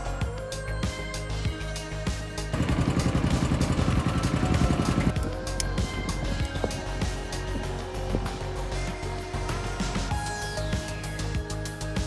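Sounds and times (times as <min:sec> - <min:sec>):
background music: 0:00.0 - 0:12.0
small engine chugging: 0:02.5 - 0:06.8.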